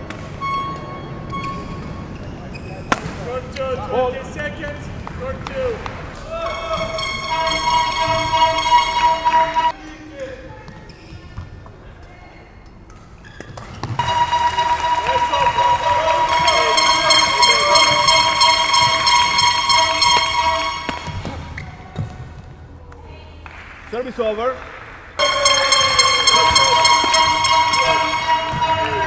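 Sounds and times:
indoor sports hall noise: 0.0 - 29.0
horn holding a steady note: 6.5 - 9.7, 14.0 - 21.5, 25.2 - 29.0.

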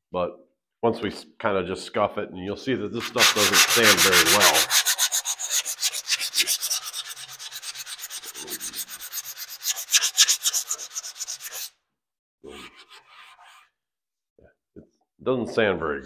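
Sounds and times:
sandpaper scrubbing by hand: 3.0 - 11.7.

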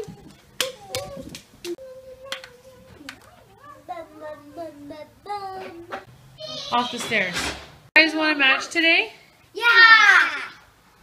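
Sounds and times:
child singing: 0.0 - 6.0.

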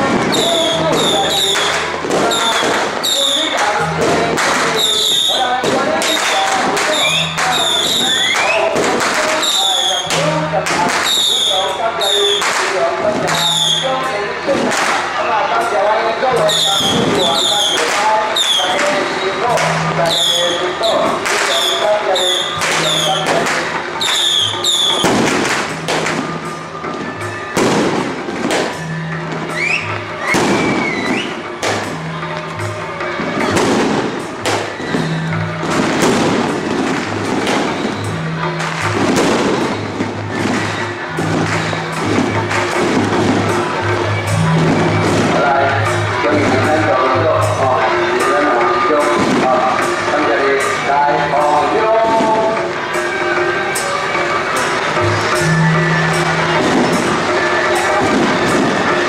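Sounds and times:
firecrackers crackling: 0.0 - 59.0
music with low beat: 22.5 - 59.0.

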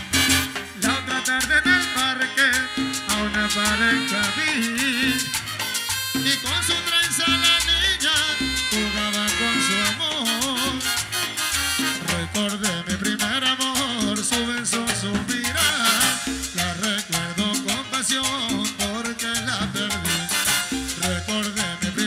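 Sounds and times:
latin dance band playing: 0.0 - 22.0
man singing into microphone: 0.8 - 5.5, 6.2 - 11.3, 11.9 - 22.0.

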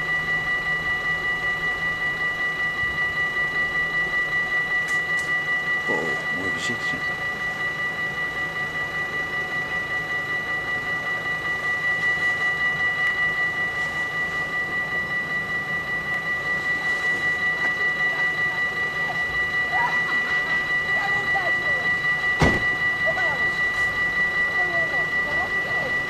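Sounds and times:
level-crossing warning bell ringing: 0.0 - 26.0.

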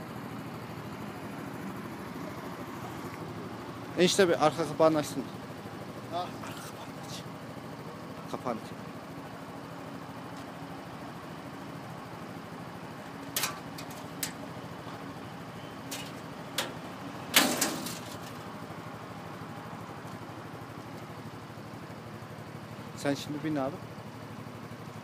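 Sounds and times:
small engine idling: 0.0 - 25.0
latch clicks: 13.2 - 14.4, 15.9 - 18.4.

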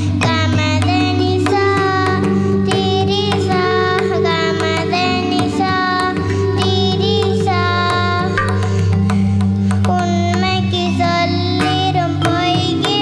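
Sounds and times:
girl singing into microphone: 0.0 - 13.0.

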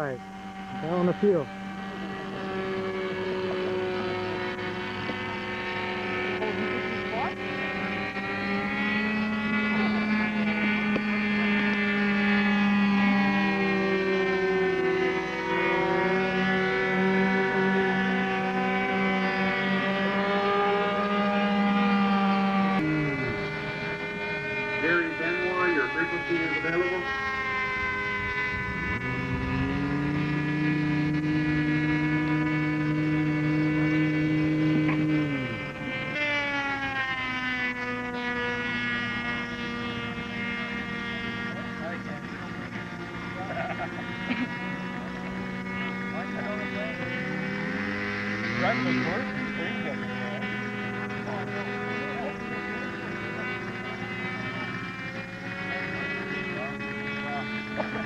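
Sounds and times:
model airplane engines: 0.0 - 58.0.

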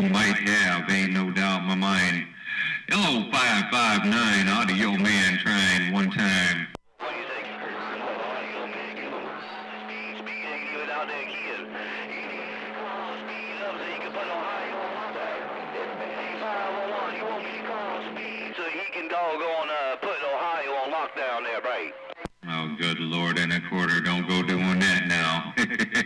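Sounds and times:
garbled radio voice: 0.0 - 26.0
radio static: 0.0 - 26.0.

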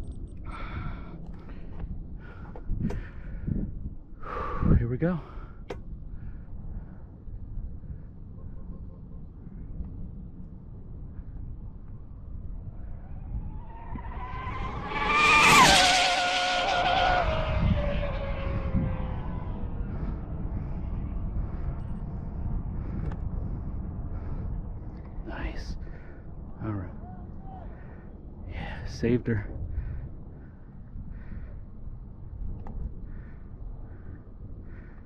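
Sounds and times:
steady low rumble: 0.0 - 15.6, 17.2 - 35.0
rc car high whine passing: 12.4 - 24.6.

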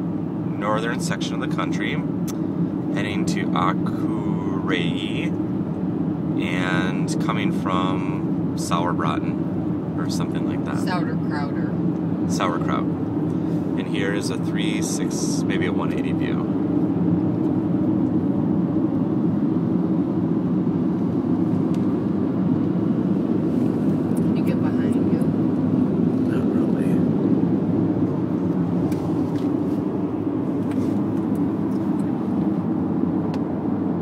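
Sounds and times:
road and tyre rumble in car: 0.0 - 34.0.

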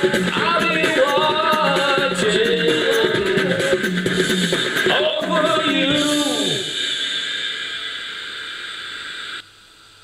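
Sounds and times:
hissing noise wash: 1.2 - 10.0
faint hiss: 2.9 - 10.0.

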